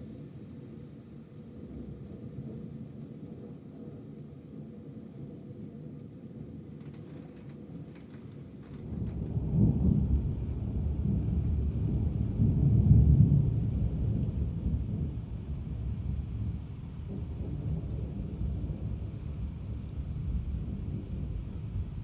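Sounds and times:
rain: 0.0s - 22.0s
thunder rumbling: 0.1s - 22.0s.

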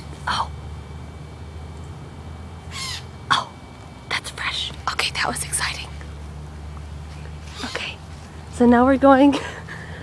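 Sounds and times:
low background hum: 0.0s - 10.0s
magpie call: 2.7s - 3.1s, 7.5s - 7.9s.

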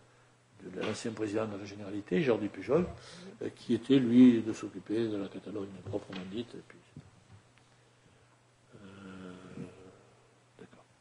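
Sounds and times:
man talking: 0.6s - 6.9s
man humming hesitantly: 8.7s - 10.9s.

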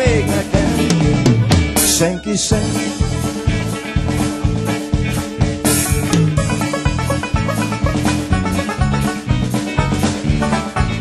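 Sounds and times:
electric guitars: 0.0s - 11.0s
steady drum beat: 0.0s - 11.0s.

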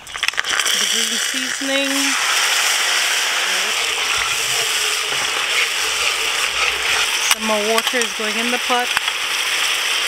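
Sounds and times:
sauce sizzling in a pot: 0.0s - 10.0s.

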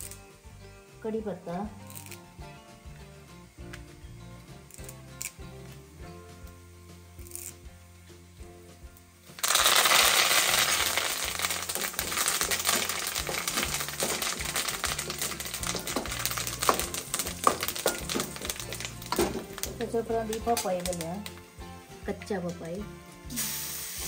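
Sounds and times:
leaves sizzling in hot oil: 0.0s - 7.7s, 9.2s - 24.0s.

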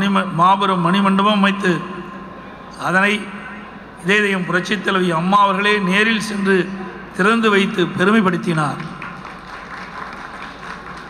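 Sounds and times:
audience applauding: 9.0s - 11.0s.

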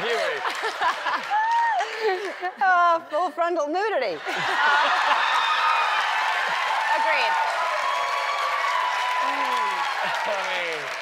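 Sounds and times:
audience cheering and applauding: 0.0s - 2.4s, 4.3s - 11.0s
whoops and voices in crowd: 1.3s - 1.9s, 4.6s - 10.9s.

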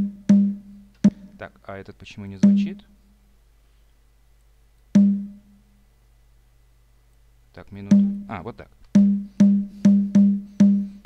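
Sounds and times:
low conga hit: 5.0s - 5.3s, 7.9s - 8.3s.

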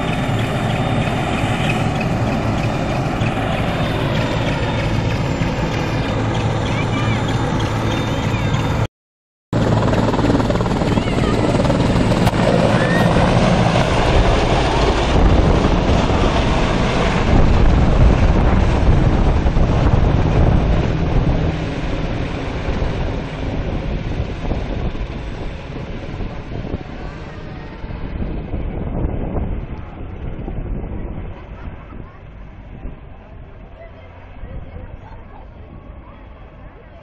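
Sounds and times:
helicopter rotors and turbines: 0.0s - 8.9s, 9.6s - 37.0s.

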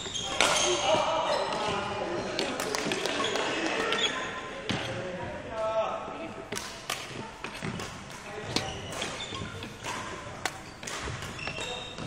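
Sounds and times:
sharp knocks in sports hall: 6.5s - 12.0s
brief pitched squeak: 11.4s - 12.0s.

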